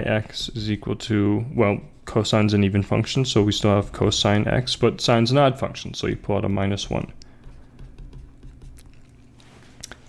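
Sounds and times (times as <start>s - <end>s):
stylus tapping drawing tablet: 7.2s - 8.9s.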